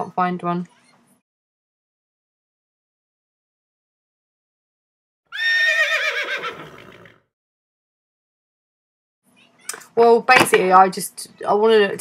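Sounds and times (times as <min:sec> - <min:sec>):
horse whinny: 0:05.3 - 0:07.3.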